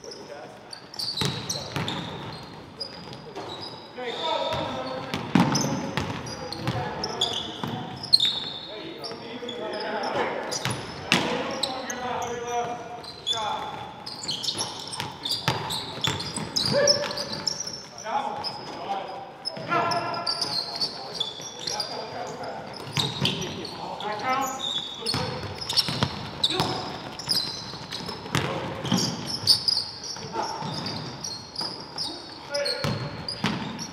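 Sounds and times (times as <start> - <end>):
shoes squeaking on court: 0.0 - 33.9
basketball bouncing on hardwood floor: 25.1 - 27.0, 27.7 - 29.2.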